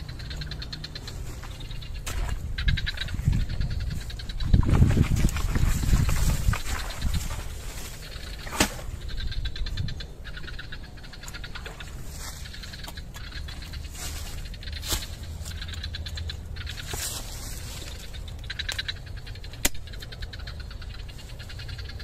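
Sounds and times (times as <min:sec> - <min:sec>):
insects chirping: 0:00.0 - 0:22.0.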